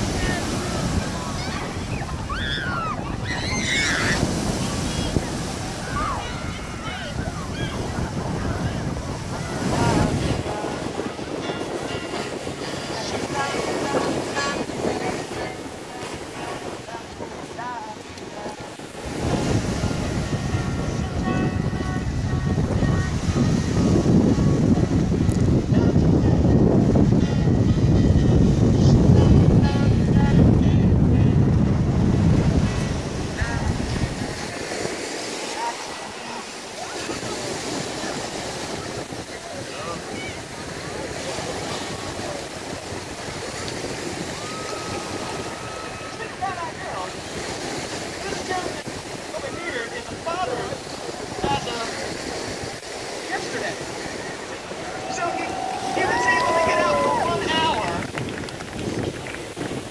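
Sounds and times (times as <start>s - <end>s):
voices talking: 0.0s - 24.7s, 32.8s - 58.2s
waves washing on pebble shore: 0.0s - 26.2s, 31.9s - 59.9s
crowd talking: 0.0s - 59.9s
wind buffeting microphone: 0.0s - 59.9s.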